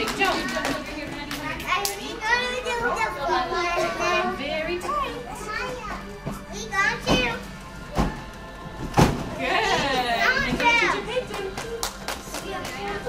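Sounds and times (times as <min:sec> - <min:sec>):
young children chattering: 0:00.0 - 0:07.5.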